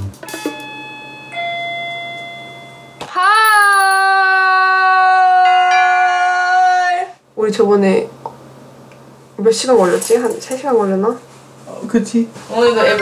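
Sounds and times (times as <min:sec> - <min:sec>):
two-tone doorbell chime: 0:00.2 - 0:03.9.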